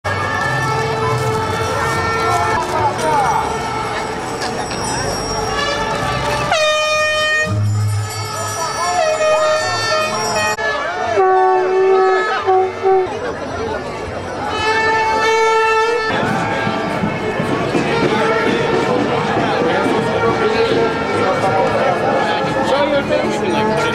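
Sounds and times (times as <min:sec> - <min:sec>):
crowd noise: 0:00.0 - 0:23.9
horn long blasts: 0:00.1 - 0:03.6, 0:05.3 - 0:13.4, 0:14.4 - 0:23.9.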